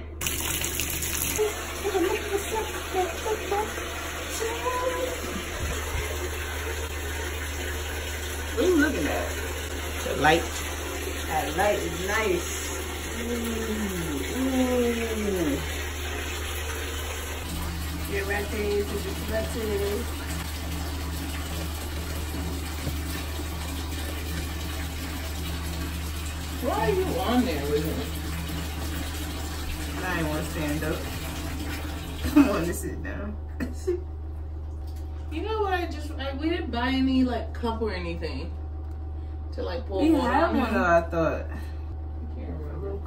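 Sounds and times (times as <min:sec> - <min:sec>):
tap running into bathtub: 0:00.2 - 0:32.7.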